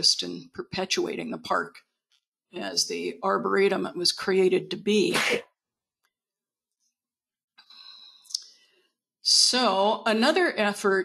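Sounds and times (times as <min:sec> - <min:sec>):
breath at microphone: 0:07.6 - 0:08.9.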